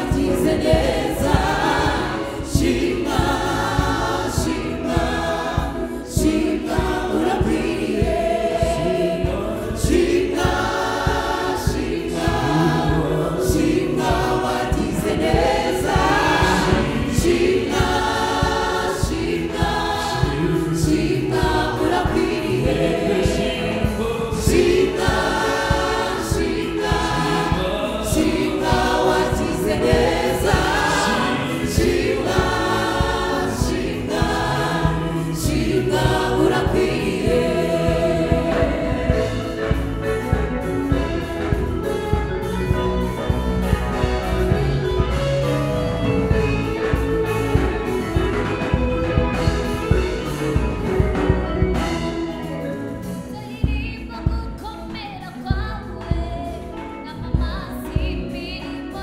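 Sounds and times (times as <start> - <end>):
steady beat: 0.0 - 53.1
gospel choir singing: 0.0 - 55.0.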